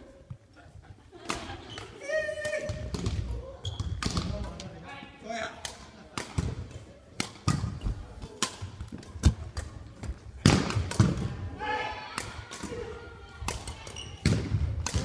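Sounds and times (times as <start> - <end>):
shoe squeaks: 3.6 - 4.0
racket hitting shuttlecock: 5.6 - 9.8, 12.2 - 15.0.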